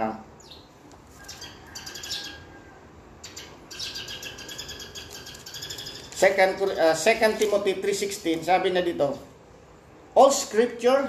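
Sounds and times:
birds chirping rapid high notes: 3.2s - 6.3s.

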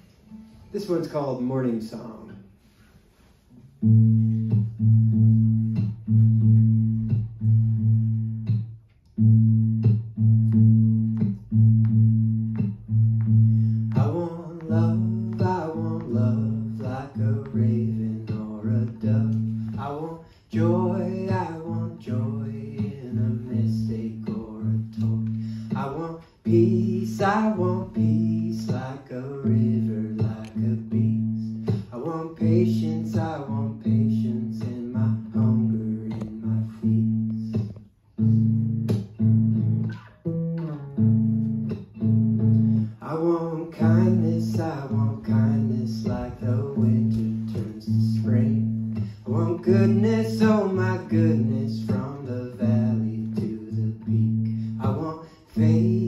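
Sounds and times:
acoustic guitar: 0.0s - 56.0s
man singing: 13.8s - 37.8s, 42.9s - 56.0s.

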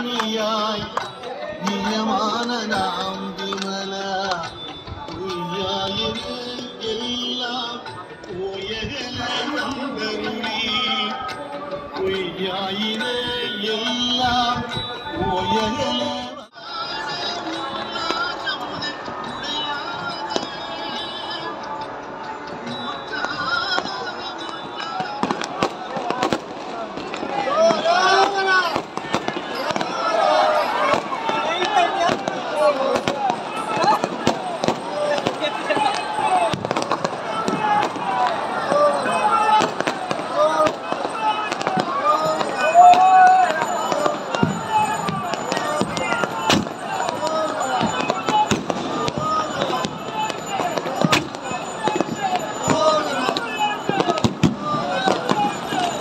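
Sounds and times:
song with music: 0.0s - 25.8s
voices: 0.0s - 56.0s
firecracker bangs: 23.2s - 56.0s.

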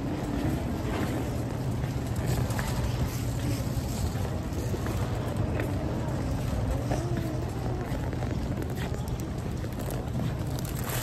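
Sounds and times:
shopping cart wheels rumbling: 0.0s - 11.0s.

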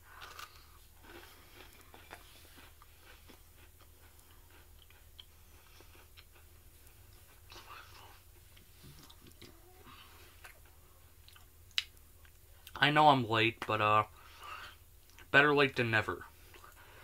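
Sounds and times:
chewing cookie: 0.0s - 12.8s, 14.2s - 15.4s
low steady hum: 0.0s - 17.0s.

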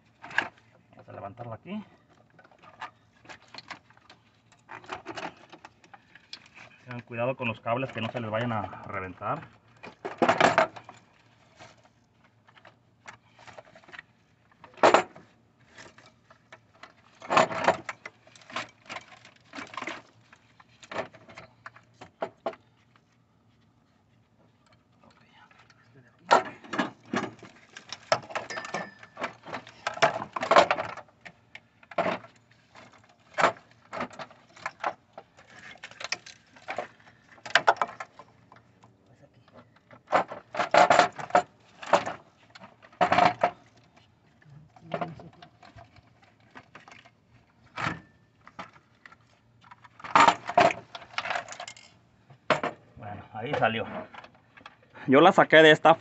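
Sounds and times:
plastic parts clicking and rattling: 2.0s - 7.0s, 7.8s - 23.2s, 24.6s - 38.9s, 39.5s - 52.8s.

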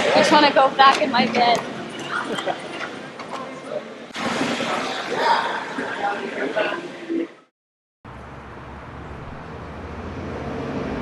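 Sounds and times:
indistinct background chatter: 0.0s - 7.5s.

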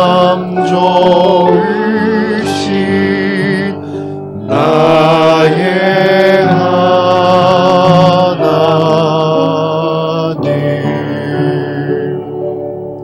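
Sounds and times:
person singing worship song: 0.0s - 13.0s.

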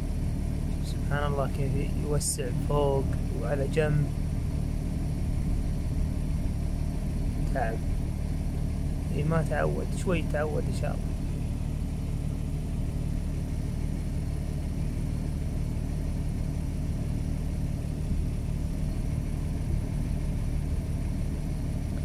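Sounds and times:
car engine idling: 0.0s - 22.0s.

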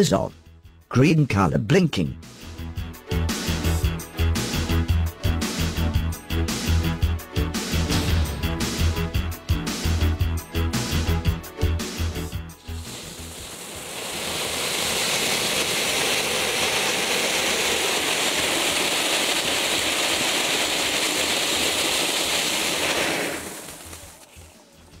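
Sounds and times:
firework fountain hissing: 12.6s - 25.0s.

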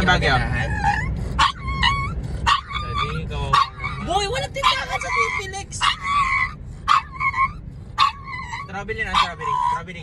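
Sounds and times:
dog whining: 0.0s - 10.0s.

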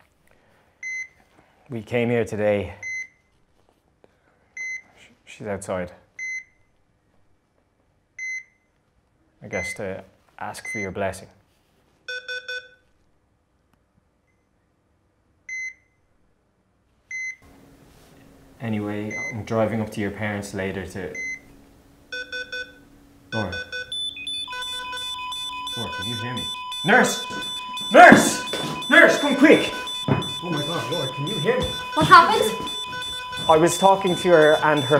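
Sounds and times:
heart monitor beeping: 0.8s - 1.2s, 12.1s - 12.8s, 19.1s - 19.4s, 21.2s - 21.4s, 22.1s - 34.9s
steady electronic tones: 22.1s - 34.9s.

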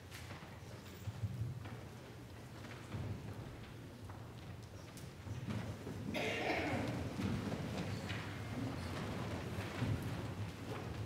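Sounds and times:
people shuffling: 5.4s - 11.0s.

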